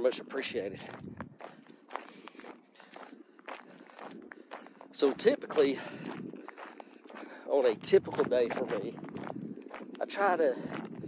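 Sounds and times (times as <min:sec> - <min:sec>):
footsteps walking: 0:00.0 - 0:11.0.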